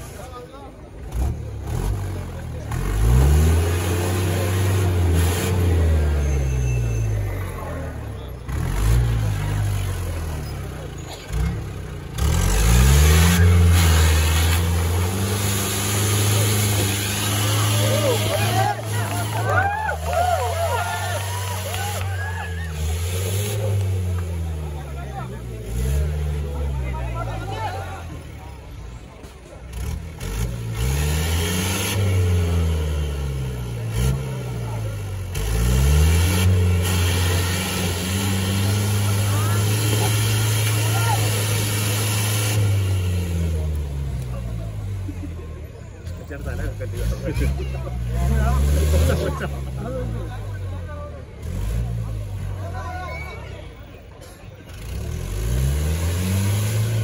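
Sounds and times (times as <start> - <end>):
spectators' voices and shouts: 0.0 - 31.0, 33.5 - 55.6
diesel engine revving: 0.0 - 57.0.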